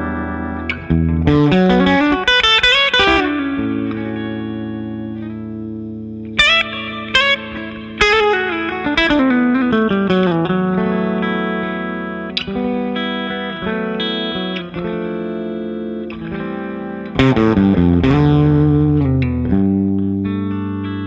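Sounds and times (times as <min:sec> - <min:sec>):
electric guitar blues lead: 0:00.0 - 0:21.0.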